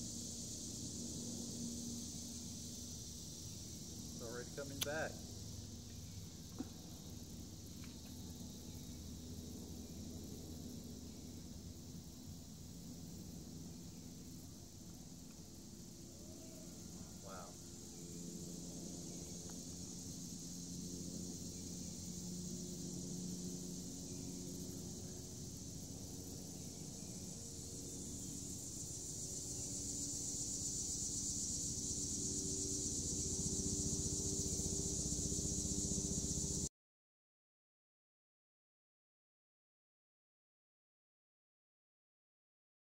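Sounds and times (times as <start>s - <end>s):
insects buzzing: 0.0s - 36.7s
low background hum: 0.0s - 36.7s.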